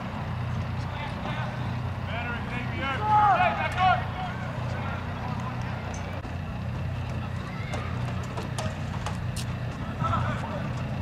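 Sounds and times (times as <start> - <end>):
distant shouts: 0.3 - 8.9, 9.8 - 11.0
footsteps and ball taps: 7.0 - 9.9.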